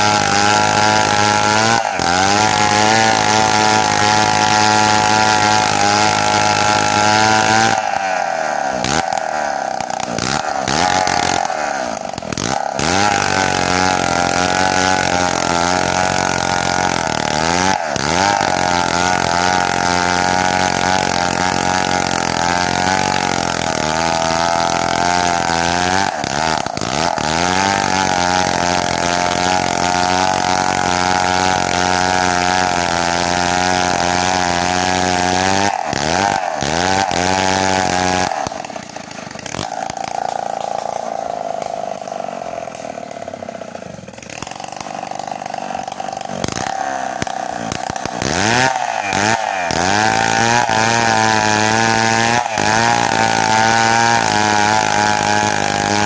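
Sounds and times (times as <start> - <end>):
chainsaw cutting through log: 0.0 - 56.0.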